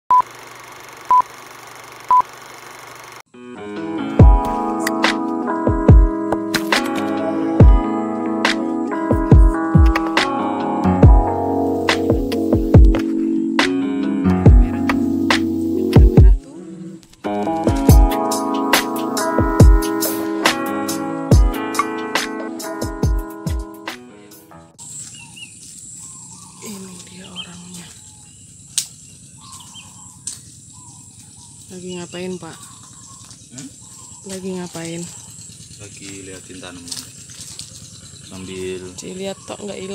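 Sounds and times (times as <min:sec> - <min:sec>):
music: 0:03.3 - 0:16.4, 0:17.2 - 0:24.8.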